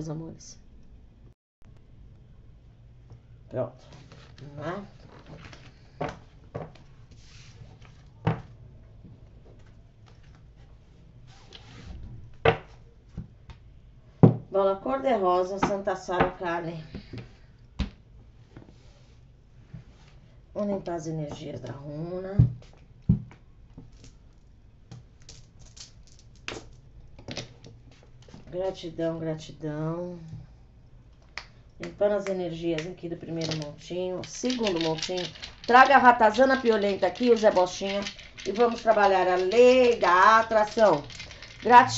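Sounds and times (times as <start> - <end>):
dice clicking: 31.8 - 41.9
cards shuffling: 32.8 - 41.9.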